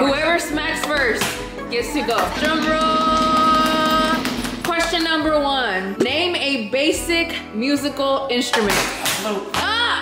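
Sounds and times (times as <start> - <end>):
vocal drum roll: 2.2 - 5.4.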